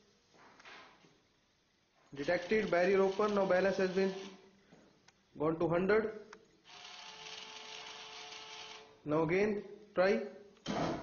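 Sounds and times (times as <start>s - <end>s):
small motor whining: 6.7s - 8.9s.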